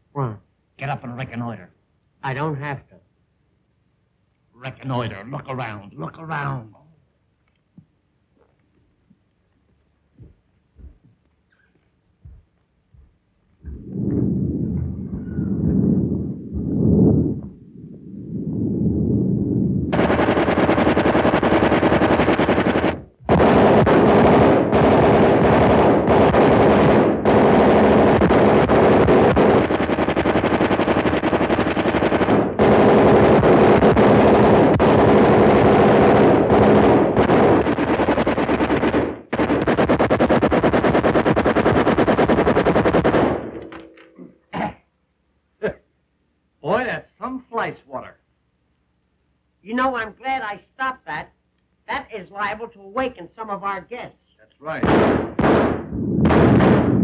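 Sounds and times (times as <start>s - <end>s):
muffled rumbling: 12.3s - 21.0s, 55.3s - 57.0s
machine-gun fire: 19.9s - 43.9s, 54.8s - 57.0s.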